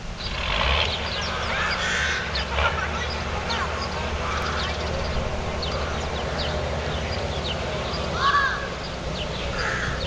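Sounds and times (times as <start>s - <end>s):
birds chirping and calling: 0.0s - 10.0s
steady low rumble: 0.0s - 10.0s.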